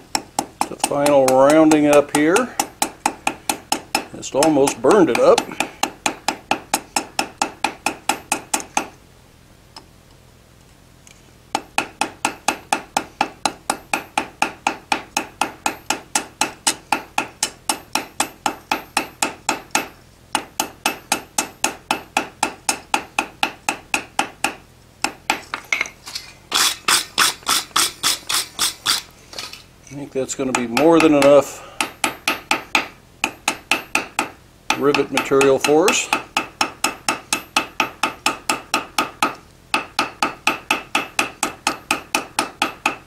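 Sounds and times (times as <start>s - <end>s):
wire brush scrubbing metal: 26.0s - 29.6s.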